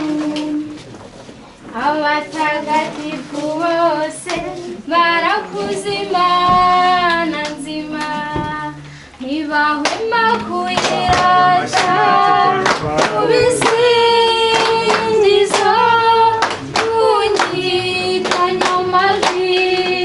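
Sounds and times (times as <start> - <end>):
high voices singing together: 1.7 - 20.0
hand claps: 9.8 - 20.0.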